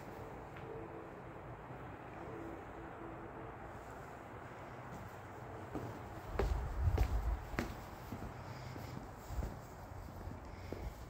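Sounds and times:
footsteps on concrete: 0:04.9 - 0:11.0.

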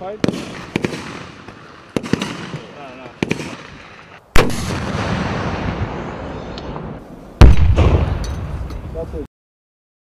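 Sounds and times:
rocket launcher firing: 0:00.2 - 0:08.7
explosion: 0:04.4 - 0:08.7.

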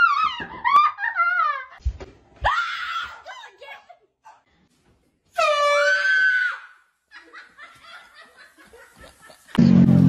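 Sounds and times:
people laughing: 0:07.1 - 0:09.6.

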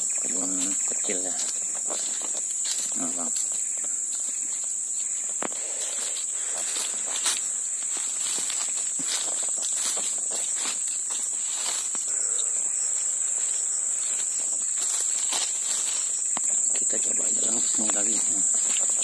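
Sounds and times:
footsteps crunching through dry brush: 0:00.0 - 0:19.0
high-pitched insect buzz: 0:00.0 - 0:19.0.

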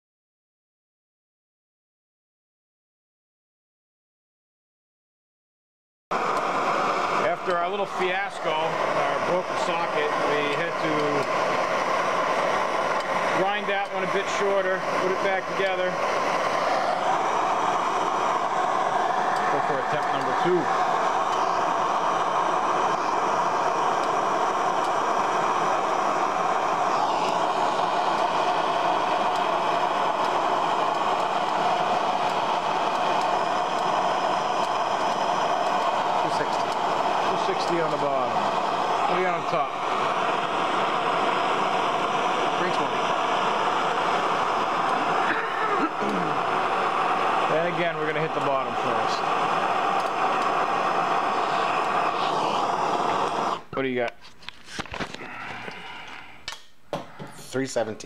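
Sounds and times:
gas torch flame hissing: 0:06.2 - 0:58.0.

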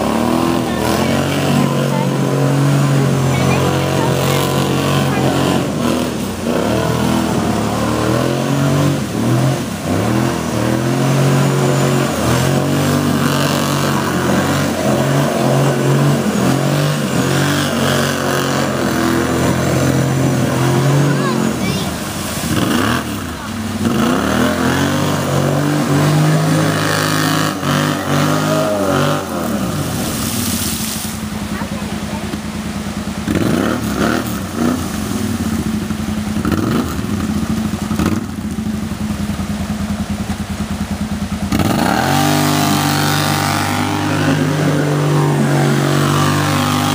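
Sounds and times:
atv engine revving: 0:00.0 - 0:46.9
water splashing from tyres: 0:00.0 - 0:46.9.

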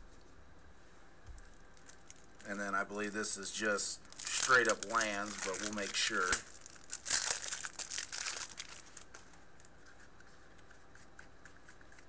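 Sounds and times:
plastic wrapping crinkling and tearing: 0:01.5 - 0:02.6, 0:04.0 - 0:10.7.

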